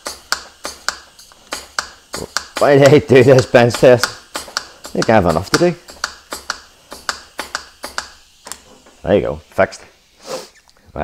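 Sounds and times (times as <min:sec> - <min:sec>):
hand pump clicks: 0:00.0 - 0:08.6.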